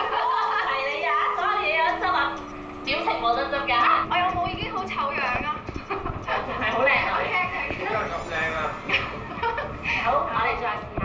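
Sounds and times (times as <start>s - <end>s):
women talking: 0.0s - 8.0s, 9.8s - 11.0s.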